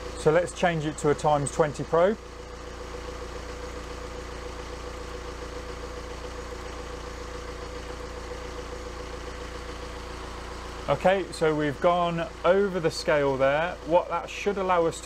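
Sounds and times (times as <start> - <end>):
diesel engine idling: 0.0 - 15.0.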